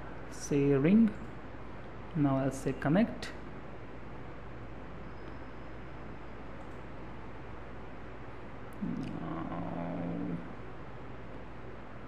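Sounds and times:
steady low background hum: 0.0s - 12.0s
man humming: 8.8s - 10.5s.

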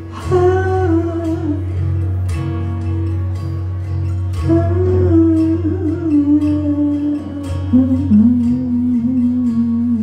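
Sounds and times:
man singing low wordless notes: 0.0s - 2.2s, 4.4s - 10.0s
strummed acoustic guitar: 0.0s - 10.0s.

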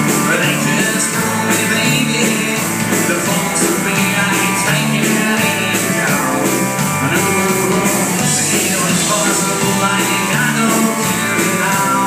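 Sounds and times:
rock band playing loudly: 0.0s - 12.0s.

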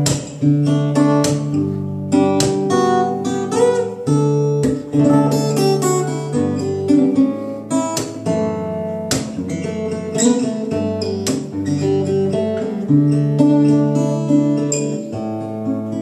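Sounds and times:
classical guitar strumming chords: 0.0s - 16.0s.

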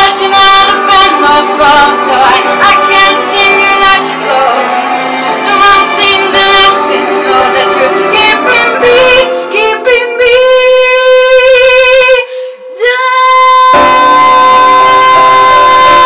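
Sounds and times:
woman singing slow melody: 5.5s - 16.0s.

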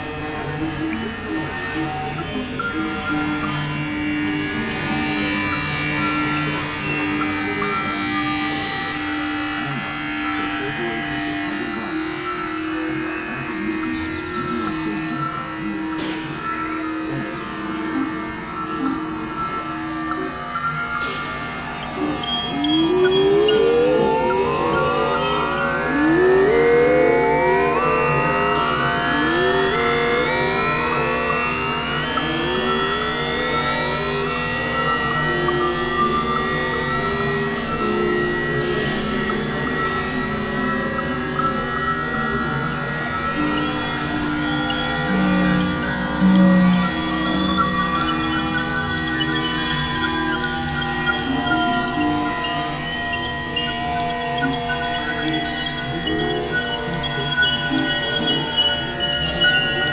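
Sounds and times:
synthesizer drone: 0.0s - 59.9s
rising pitch sweeps: 21.9s - 34.7s, 43.3s - 59.9s.

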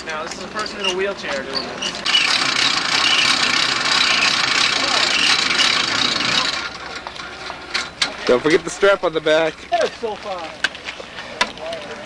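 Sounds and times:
crowd voices talking: 2.8s - 12.0s.

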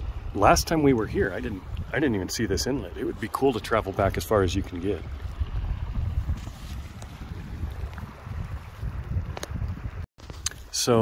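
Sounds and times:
wind rumbling on microphone: 0.0s - 10.7s
faint water sounds: 0.0s - 11.0s.

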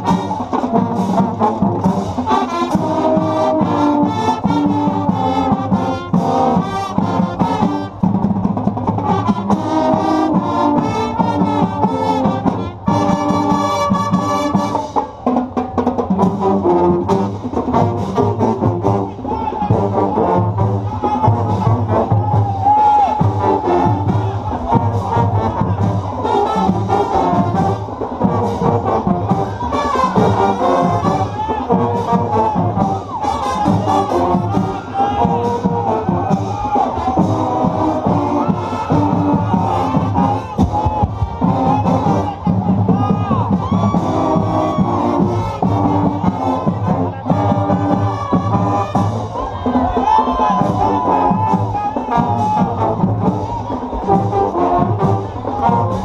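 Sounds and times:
marching band brass: 0.0s - 56.0s
steady drum beat: 0.0s - 56.0s.

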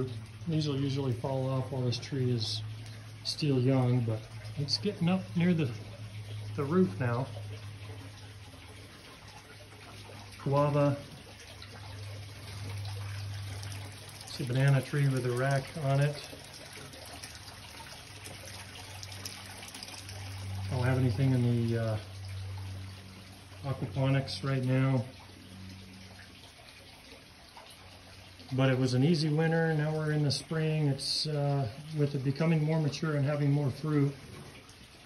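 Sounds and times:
low steady hum: 0.0s - 35.0s
water trickling: 0.0s - 35.0s.

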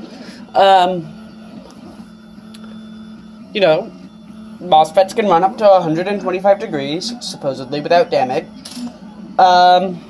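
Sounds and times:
three-d printer humming: 0.0s - 10.0s.

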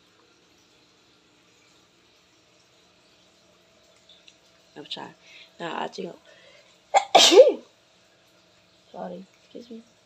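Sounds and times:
person sneezing: 7.0s - 7.6s.

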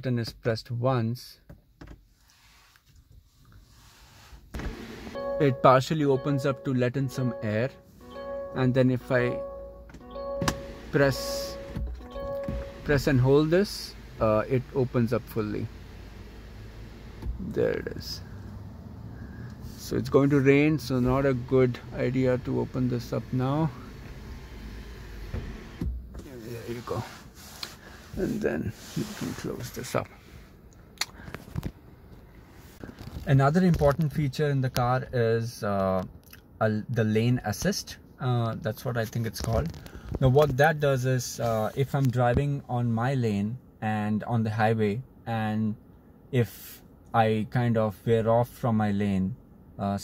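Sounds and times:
electric motor humming: 13.4s - 17.3s.

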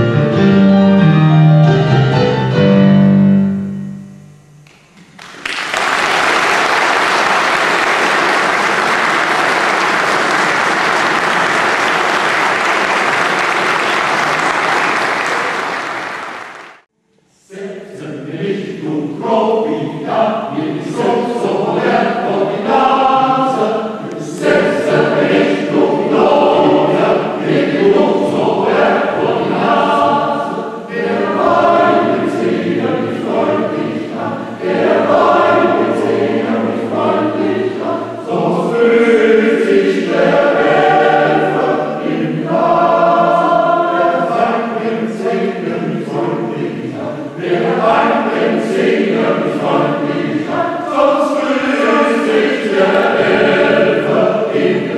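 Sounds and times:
mixed choir singing: 5.7s - 16.6s, 17.4s - 54.9s.

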